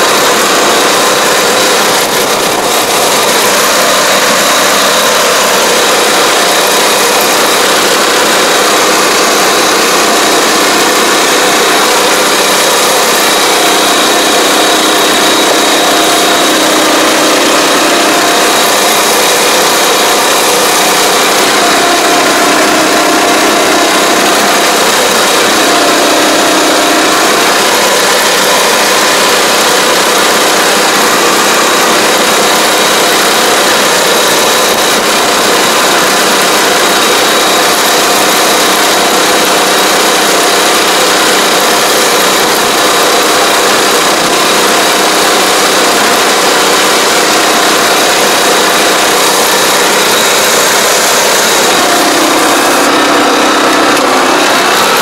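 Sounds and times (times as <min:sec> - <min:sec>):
small engine running: 0:00.0 - 0:55.0.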